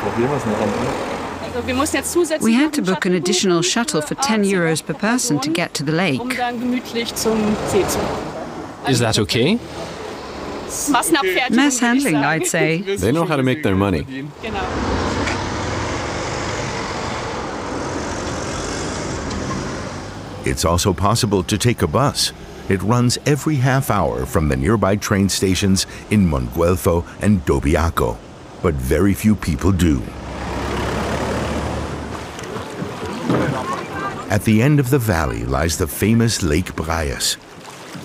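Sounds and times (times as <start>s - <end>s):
car engine and tyre noise: 0.0s - 2.3s, 14.3s - 37.2s
road traffic: 0.0s - 38.0s.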